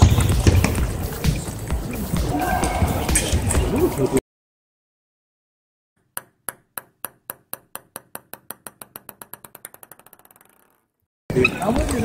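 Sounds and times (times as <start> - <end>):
table tennis ball bouncing: 0.0 - 1.4, 6.0 - 11.0.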